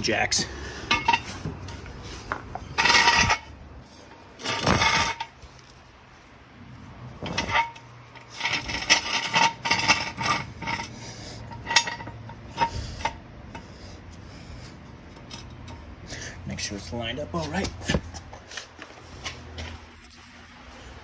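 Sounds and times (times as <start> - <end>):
jack stand scraping on concrete: 0.3 - 5.8, 7.0 - 20.2.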